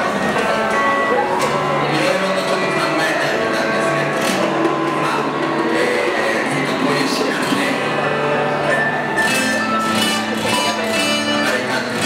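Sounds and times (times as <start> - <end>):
man singing through a microphone: 0.0 - 8.8, 10.4 - 12.0
acoustic guitar: 0.0 - 12.0.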